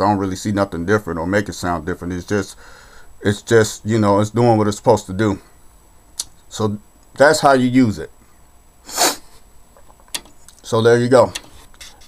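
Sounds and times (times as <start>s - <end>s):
person sniffing or sneezing: 8.8s - 9.5s.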